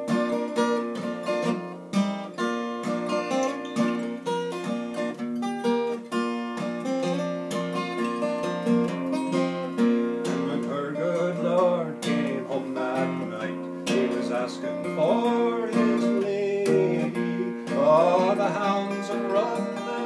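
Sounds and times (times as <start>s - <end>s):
acoustic guitar folk instrumental: 0.0s - 20.0s.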